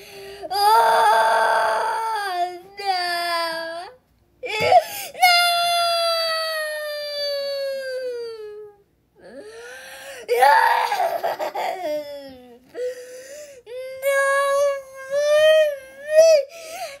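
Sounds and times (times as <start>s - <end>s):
person crying in a high wail: 10.2s - 12.6s.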